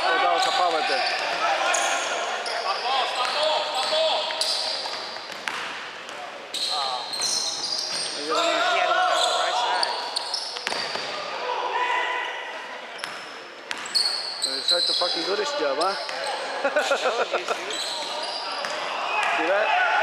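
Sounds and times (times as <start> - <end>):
sneaker squeaks: 0.1 - 5.6, 6.5 - 11.2, 12.2 - 16.5, 17.5 - 18.8.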